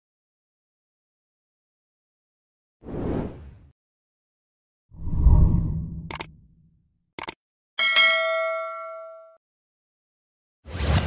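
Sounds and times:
quick clicks: 6.1 - 6.4
bright bell chime: 7.8 - 9.4.

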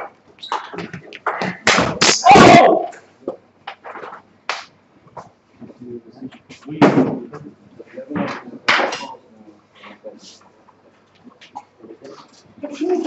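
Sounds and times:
bursts of voice: 2.0 - 3.0.

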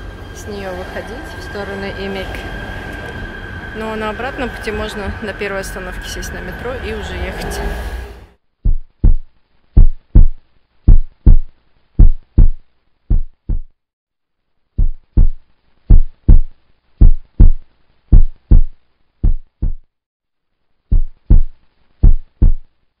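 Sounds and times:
heartbeat double thumps: 8.6 - 13.8, 14.8 - 19.9, 20.9 - 22.7.

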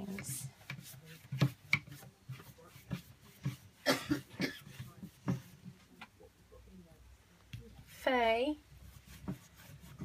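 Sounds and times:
brushing wax on wood: 0.0 - 6.0, 7.6 - 10.0
person coughing: 3.8 - 4.8.

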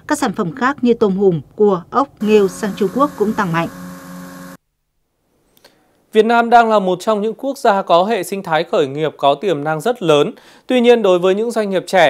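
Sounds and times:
motor hum: 2.2 - 4.6.

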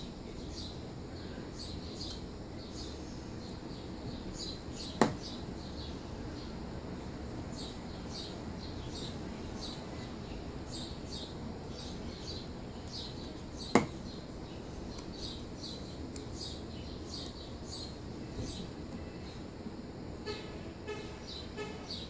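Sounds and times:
knock on wooden tabletop: 5.0 - 5.2
small bird chirping: 7.5 - 19.4.

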